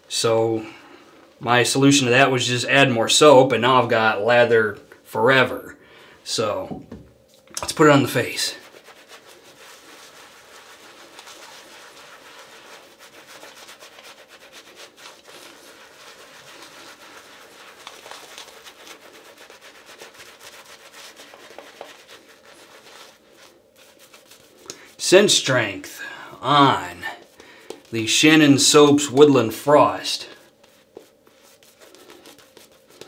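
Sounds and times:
shaving brush rubbing on stubble: 7.6s - 25.8s, 26.4s - 33.0s.

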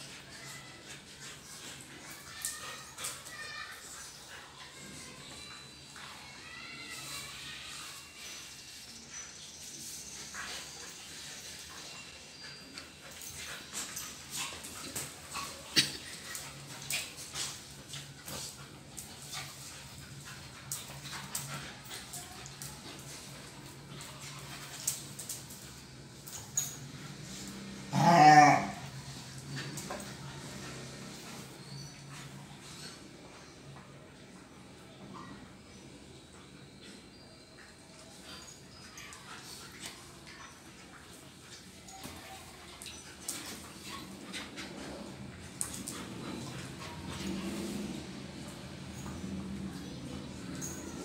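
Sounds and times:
dogs scuffling and mouthing: 0.0s - 34.0s, 36.6s - 51.0s
dog growling yelp: 27.8s - 28.9s.

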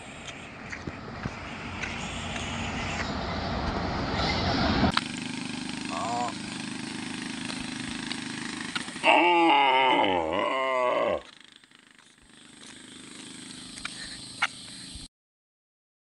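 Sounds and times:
bus engine and tyre noise: 0.0s - 15.1s
short voice sound: 5.9s - 6.4s.

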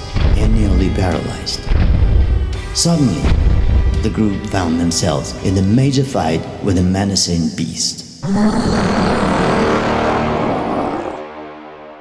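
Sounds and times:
creature roaring and growling: 8.2s - 11.3s.

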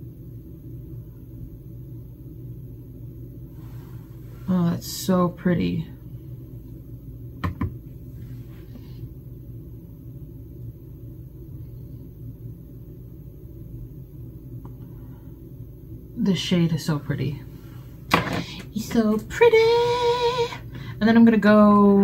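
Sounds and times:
low hum of room tone: 0.0s - 22.0s.

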